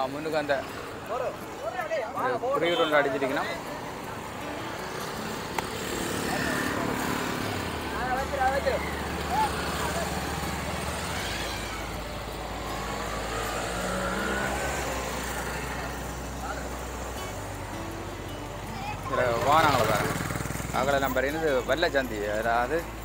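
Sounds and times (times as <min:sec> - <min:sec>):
people's voices: 0:00.0 - 0:23.0.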